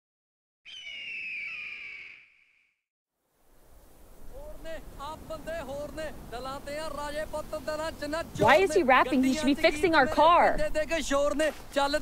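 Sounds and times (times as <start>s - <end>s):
bird of prey screech: 0.7s - 2.8s.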